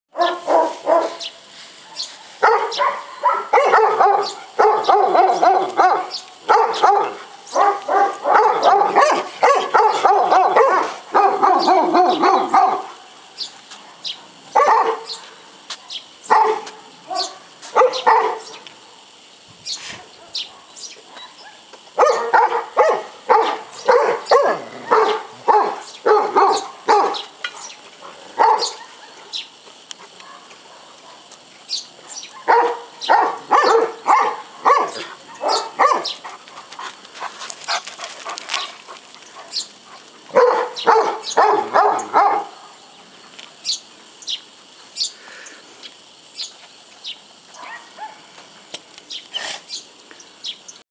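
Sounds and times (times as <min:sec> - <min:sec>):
large dog barking: 0:00.1 - 0:01.3, 0:01.9 - 0:13.0, 0:13.9 - 0:15.3, 0:16.3 - 0:18.6, 0:20.2 - 0:27.3, 0:28.2 - 0:29.3, 0:30.2 - 0:31.4, 0:32.3 - 0:36.4, 0:39.4 - 0:42.8, 0:47.6 - 0:48.2.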